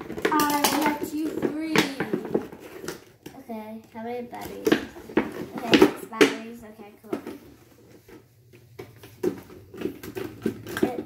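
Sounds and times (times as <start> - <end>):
plastic packaging taps and clicks: 0.0 - 7.4, 8.1 - 11.0.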